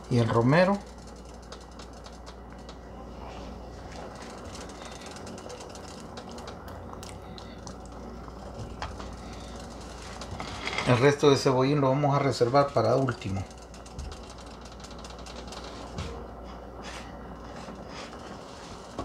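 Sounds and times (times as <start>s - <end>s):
low hum: 0.0s - 19.0s.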